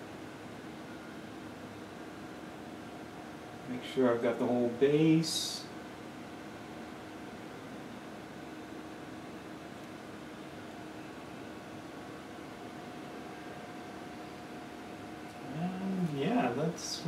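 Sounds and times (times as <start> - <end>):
fan-like hiss and hum: 0.0 - 17.0.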